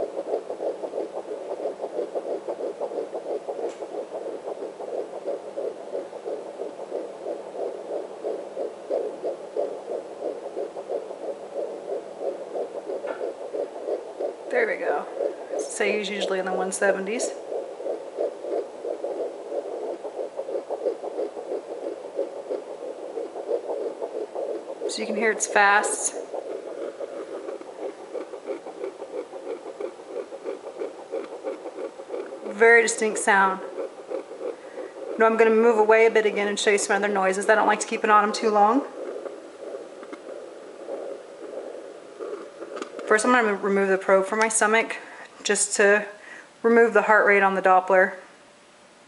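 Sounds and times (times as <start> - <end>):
fetal heartbeat through loudspeaker: 0.0 - 48.2.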